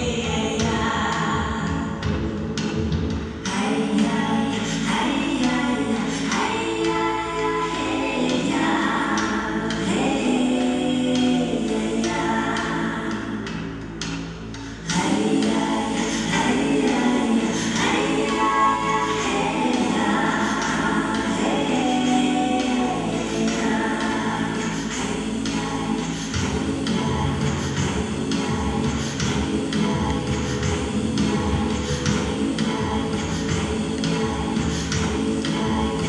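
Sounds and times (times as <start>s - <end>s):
choir singing held chords: 3.3s - 36.0s.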